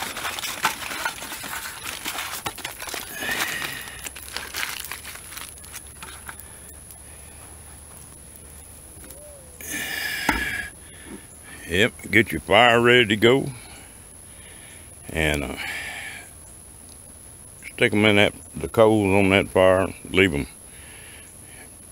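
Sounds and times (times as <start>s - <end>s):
aluminium foil crinkling: 0.0s - 6.9s.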